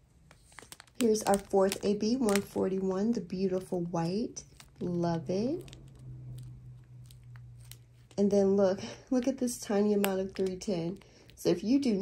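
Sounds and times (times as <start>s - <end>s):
faint low hum: 0.0s - 12.0s
plastic bags crinkling: 0.1s - 8.4s.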